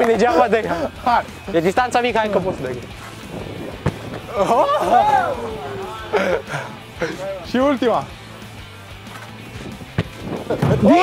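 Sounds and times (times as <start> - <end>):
quiet background music: 0.0 - 11.0
football kicked thud: 3.7 - 4.3, 9.9 - 10.8.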